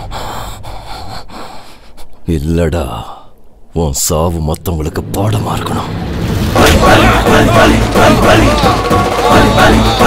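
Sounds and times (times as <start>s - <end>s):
man breathing heavily: 0.0s - 2.2s.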